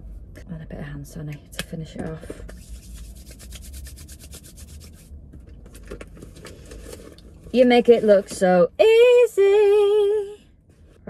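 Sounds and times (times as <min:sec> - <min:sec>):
hands rubbing together: 0:02.5 - 0:05.1.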